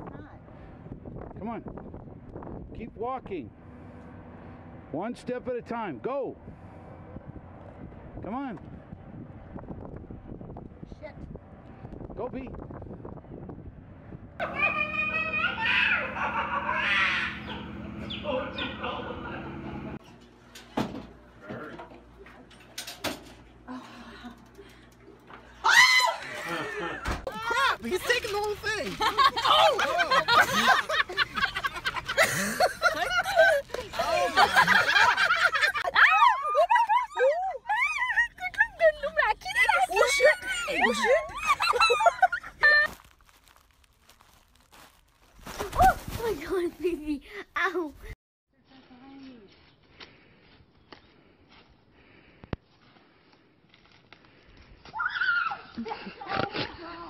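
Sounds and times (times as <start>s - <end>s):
rising-and-falling vocal cries: 14.4s - 19.2s, 25.6s - 27.0s, 35.5s - 38.4s
people shrieking and laughing: 14.4s - 19.7s, 24.2s - 27.9s, 28.8s - 42.9s, 54.8s - 56.5s
high-pitched human shriek: 16.7s - 17.5s, 25.6s - 26.5s, 54.9s - 55.8s.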